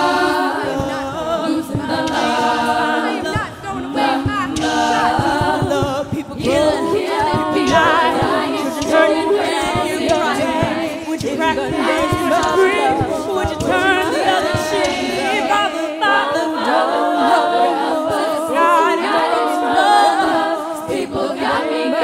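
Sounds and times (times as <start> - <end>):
vocal percussion beat: 0.0 - 22.0
women singing a cappella harmony: 0.0 - 22.0.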